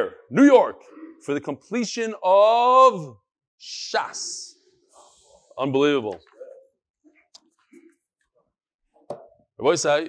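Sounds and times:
man speaking: 0.0s - 4.6s, 5.3s - 6.6s.

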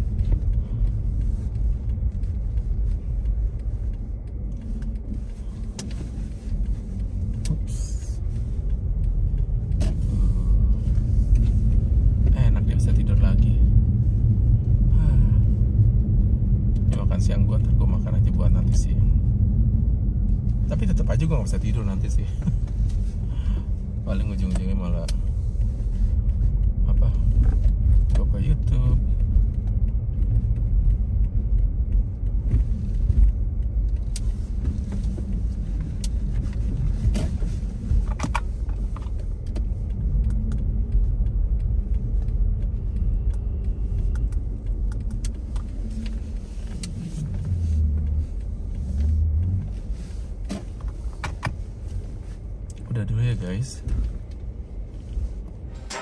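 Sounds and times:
small clicks and knocks in cabin: 0.0s - 14.6s, 15.8s - 56.0s
car engine and tyres rumbling: 0.0s - 56.0s.

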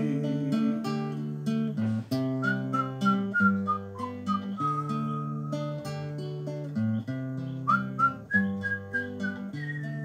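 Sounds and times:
acoustic guitar picked: 0.0s - 10.0s
whistled melody: 2.1s - 10.0s.

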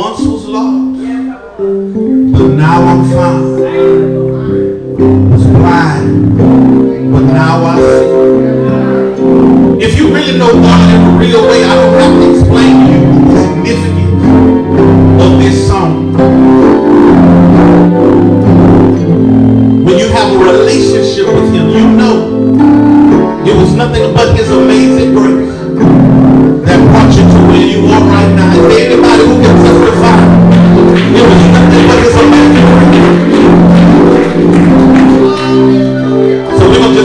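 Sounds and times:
keyboard playing sustained chords: 0.0s - 37.0s
steady bass note: 2.0s - 37.0s.

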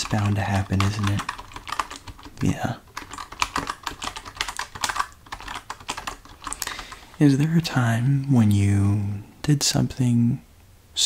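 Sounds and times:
keyboard typing clicks: 0.0s - 7.0s.

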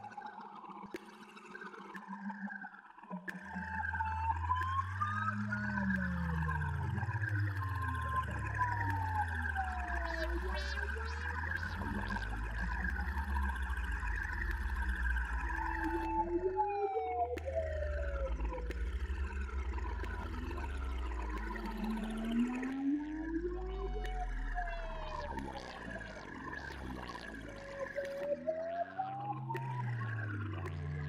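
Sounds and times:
gliding synth tones: 3.3s - 31.0s
deep synth bass drone: 3.6s - 31.0s
falling synth sweeps: 3.9s - 31.0s.

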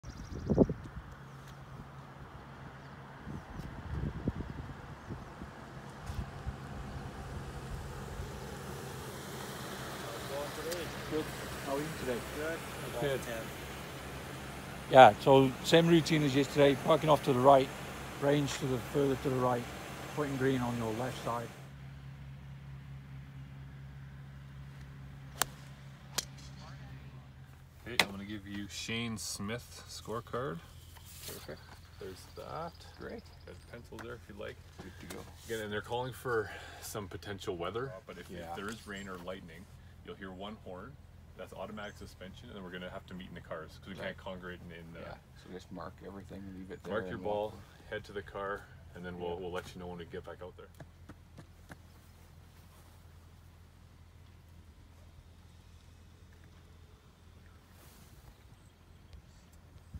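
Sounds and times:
wind buffeting microphone: 0.0s - 1.1s, 3.2s - 8.6s
steady low hum: 0.0s - 59.9s
vehicle approaching on road: 0.0s - 59.9s
golf balls being struck: 25.3s - 26.8s, 27.9s - 28.3s.

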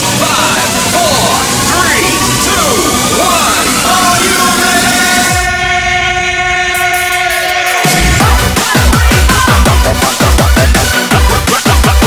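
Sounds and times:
electronic dance beat: 0.0s - 12.0s
falling bass sweep: 0.6s - 11.8s
held horn-like synth tone: 2.0s - 8.3s.

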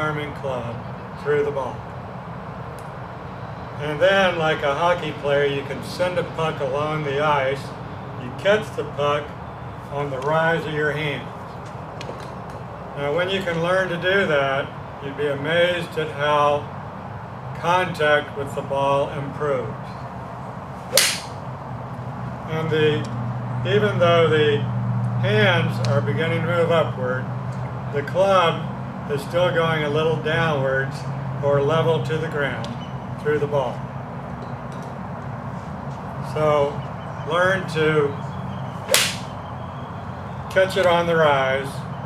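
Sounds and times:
golf club striking ball: 20.9s - 21.5s, 38.9s - 39.4s.

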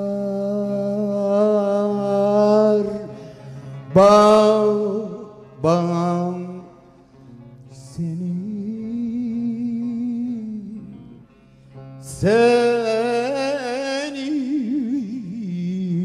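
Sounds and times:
person singing folk song: 0.0s - 16.0s.

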